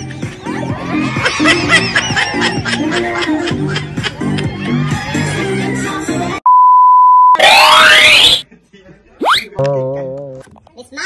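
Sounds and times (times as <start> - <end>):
music: 0.0 - 6.4
loud electronic beep: 6.5 - 8.4.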